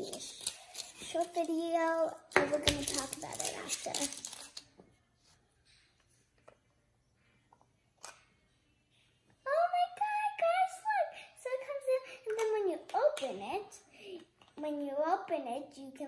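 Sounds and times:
girl talking: 0.0 - 4.5, 9.4 - 16.0.

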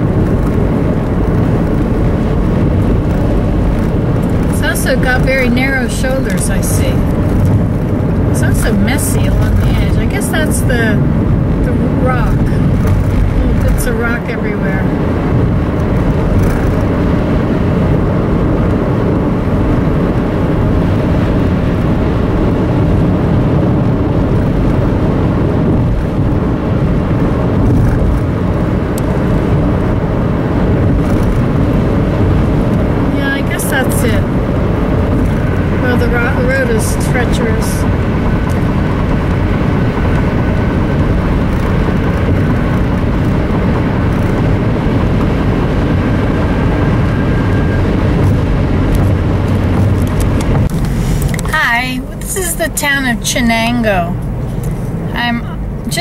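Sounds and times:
car tyre and engine rumble: 0.0 - 56.0.

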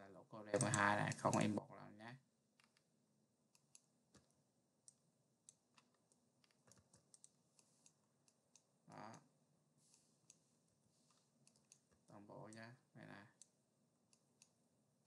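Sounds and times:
faint computer mouse clicks: 11.1 - 12.6.

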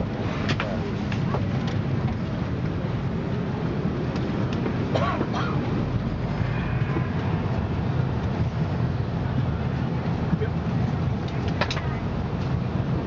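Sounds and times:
aircraft cabin air rumble: 0.0 - 13.0.

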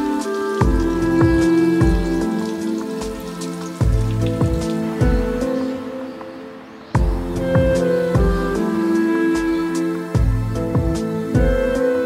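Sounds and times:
gentle instrumental music: 0.0 - 12.0
water splashing into stone basin: 0.3 - 5.8.

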